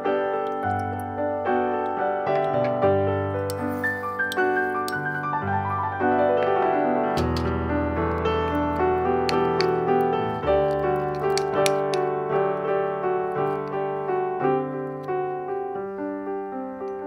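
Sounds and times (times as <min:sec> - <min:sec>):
gentle piano music: 0:00.0 - 0:17.0.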